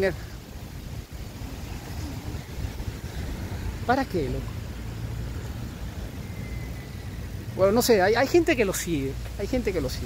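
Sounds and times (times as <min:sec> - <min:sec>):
wind buffeting microphone: 0:00.0 - 0:07.6.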